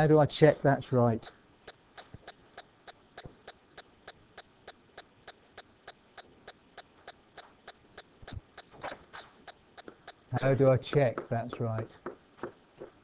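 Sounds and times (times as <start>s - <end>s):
faint steady ticking: 0.0s - 13.0s.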